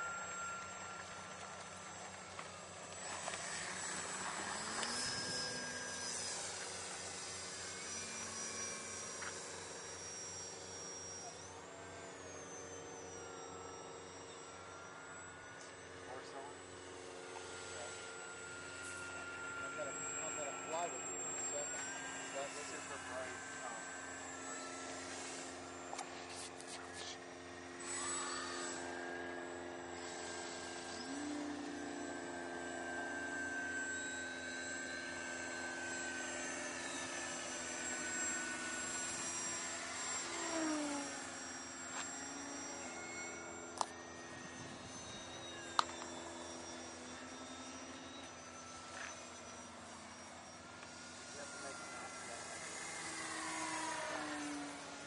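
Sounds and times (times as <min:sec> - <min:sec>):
model airplane motors whining: 0:00.0 - 0:55.0.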